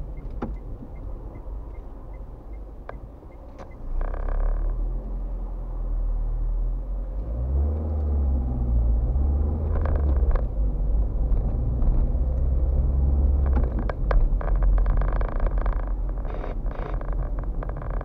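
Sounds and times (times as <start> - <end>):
car engine: 0.0 - 18.0.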